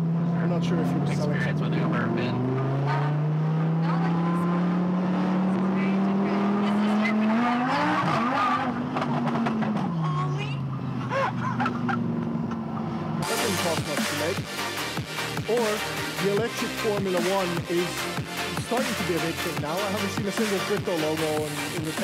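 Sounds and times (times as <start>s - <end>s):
car engine revving: 0.0s - 22.0s
passengers talking: 0.4s - 4.7s, 5.3s - 8.7s, 9.9s - 11.7s, 13.2s - 14.4s
music: 13.2s - 22.0s.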